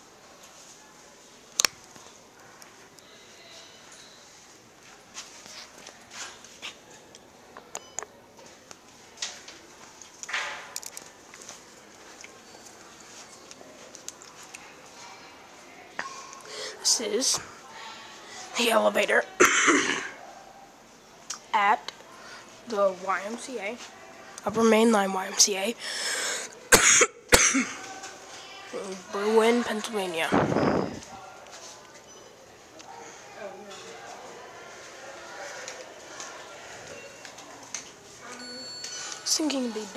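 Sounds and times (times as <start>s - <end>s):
person coughing: 19.4s - 20.2s, 26.7s - 27.8s.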